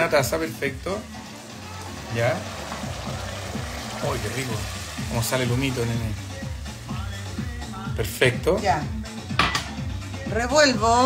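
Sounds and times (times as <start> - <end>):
water poured into hot pan: 0.0 - 8.4
frying sizzle and hiss: 0.0 - 10.1.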